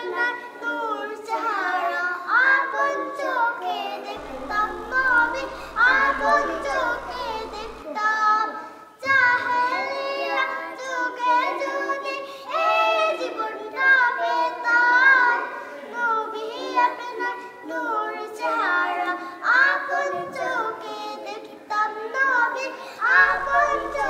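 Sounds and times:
girls singing unaccompanied: 0.0 - 24.0.

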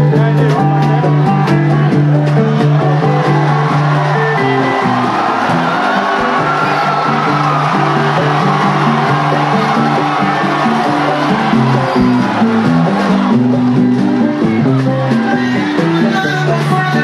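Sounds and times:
rumba band playing live: 0.0 - 17.0.

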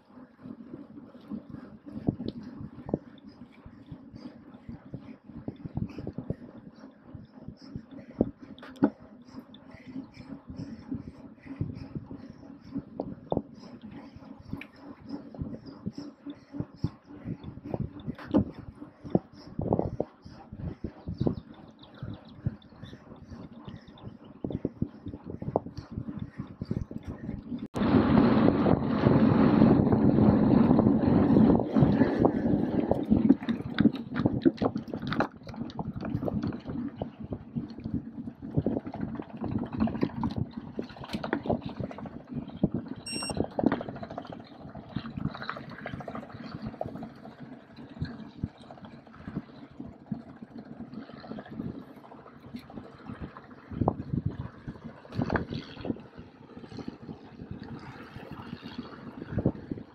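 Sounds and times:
wind buffeting microphone: 0.0 - 59.9
bike rattling and clicking: 5.1 - 52.8, 53.7 - 59.9
short high beep: 43.1 - 43.4.

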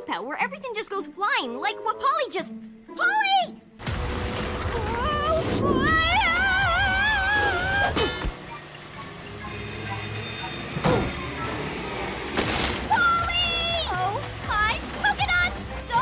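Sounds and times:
light background music: 0.0 - 16.0.

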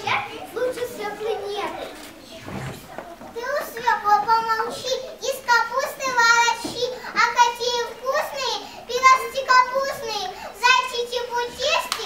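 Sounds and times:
children talking softly: 0.0 - 12.0.

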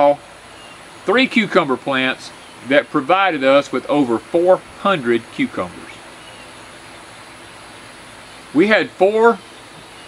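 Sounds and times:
outdoor ambient hiss: 0.0 - 10.0.

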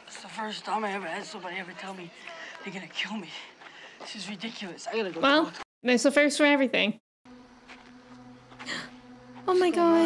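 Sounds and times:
faint buzzing hum: 7.3 - 10.0.

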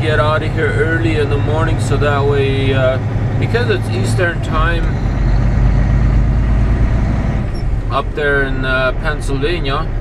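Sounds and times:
diesel truck engine droning: 0.0 - 10.0.

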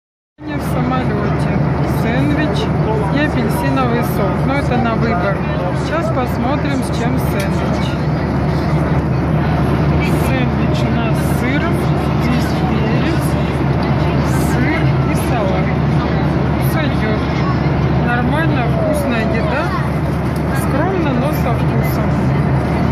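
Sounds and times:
airliner cabin drone: 0.4 - 22.9
passengers talking: 0.4 - 22.9.

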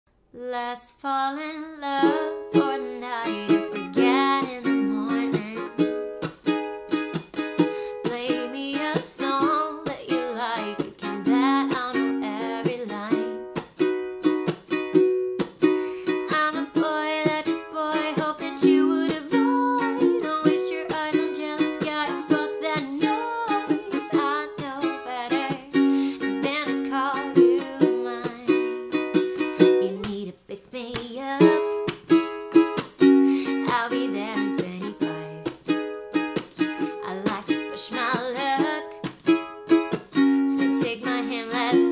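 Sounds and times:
woman singing: 0.3 - 6.0, 7.6 - 13.7, 16.0 - 32.0, 33.0 - 35.6, 36.8 - 39.2, 40.2 - 41.9
ukulele strumming chords: 1.8 - 30.3, 30.9 - 41.9.

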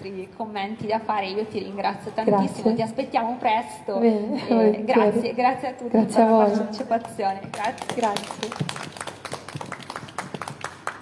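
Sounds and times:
audience applauding: 7.5 - 11.0.

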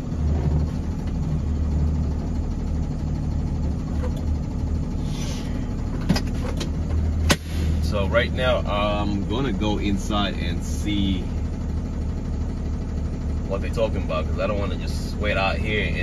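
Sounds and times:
truck engine idling: 0.0 - 16.0.

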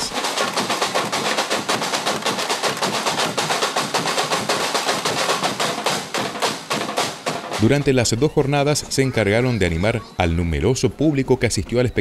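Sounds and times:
drum section playing fast rhythm: 0.0 - 9.8.

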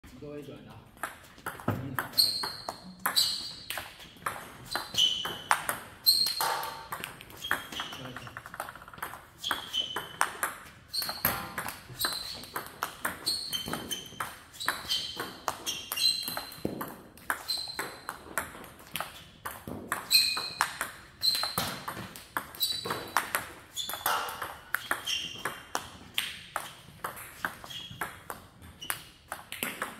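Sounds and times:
table tennis rally: 0.1 - 29.9.

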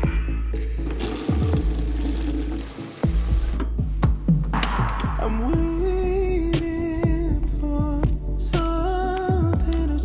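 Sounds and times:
electronic music with bass beat: 0.0 - 10.0
tap water running into bucket: 0.9 - 3.6.

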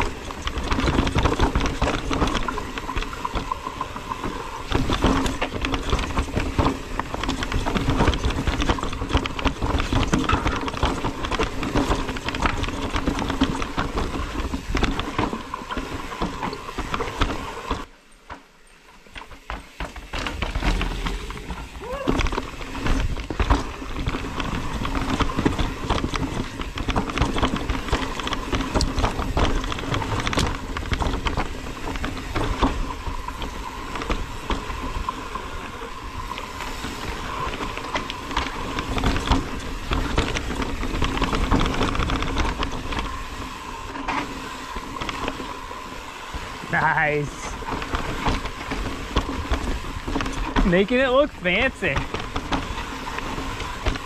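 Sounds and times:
bike tyres knocking over rocks: 0.0 - 17.9, 19.0 - 54.0
bike rattling: 0.0 - 54.0.

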